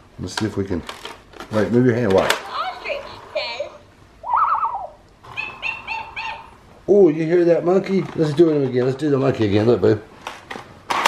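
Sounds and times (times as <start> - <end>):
toy speaker monkey hooting: 2.7 - 6.6.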